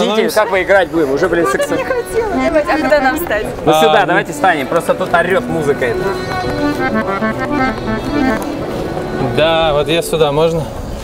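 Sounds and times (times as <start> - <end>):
button accordion playing: 1.0 - 10.4.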